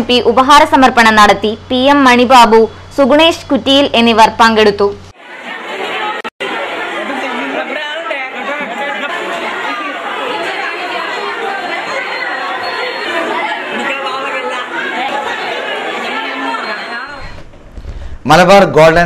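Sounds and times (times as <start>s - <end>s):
children's voices hubbub: 3.3s - 17.3s.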